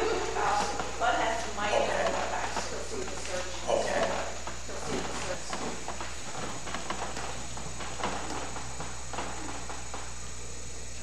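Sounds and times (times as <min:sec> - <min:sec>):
person talking indistinctly: 0:00.0 - 0:06.0.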